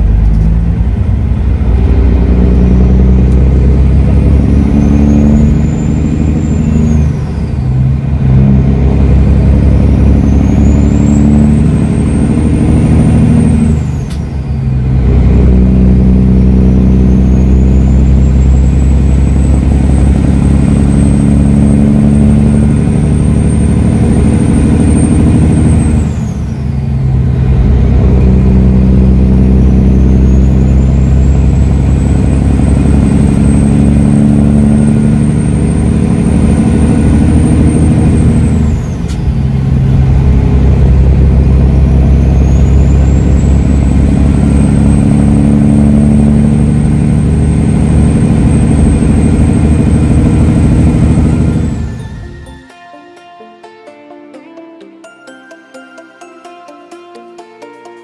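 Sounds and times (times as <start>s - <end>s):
diesel truck engine pulling hard: 0.0s - 52.4s
high engine whine: 0.0s - 52.7s.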